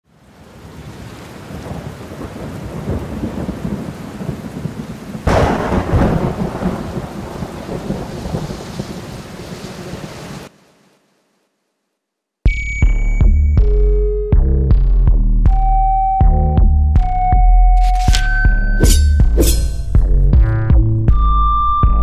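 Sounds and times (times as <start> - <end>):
steady rain: 0.0 - 12.1
thunderclap with rolling rumble: 1.5 - 10.0.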